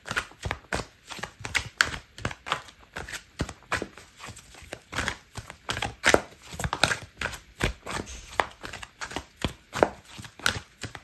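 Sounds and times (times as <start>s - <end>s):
cards being shuffled: 0.0s - 11.0s.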